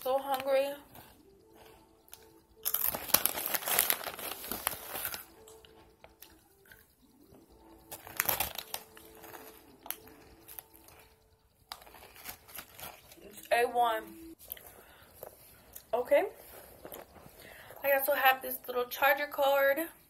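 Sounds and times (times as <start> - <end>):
snack bag crinkling: 0.2 - 6.9, 7.7 - 13.5, 16.5 - 17.4
chips crunching: 2.1 - 6.9, 7.8 - 13.5.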